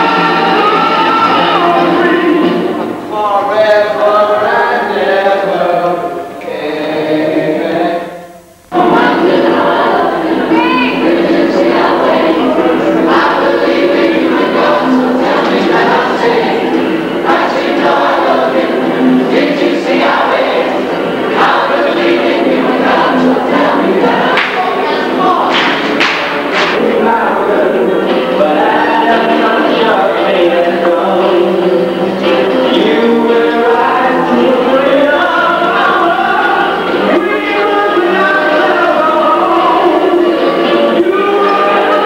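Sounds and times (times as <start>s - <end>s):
teenage voices singing chorus: 0.0s - 42.0s.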